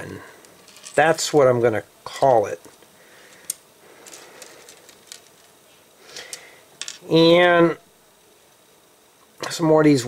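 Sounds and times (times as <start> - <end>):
faint steady background noise: 0.0 - 10.0
plastic pieces clicking on table: 3.4 - 5.5.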